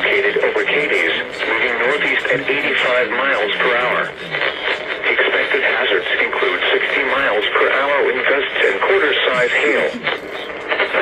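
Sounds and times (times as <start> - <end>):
speech from radio speaker: 0.0 - 11.0.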